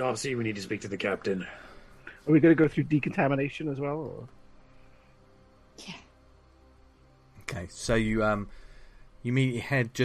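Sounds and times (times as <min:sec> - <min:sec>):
faint background music: 0:00.0 - 0:10.0.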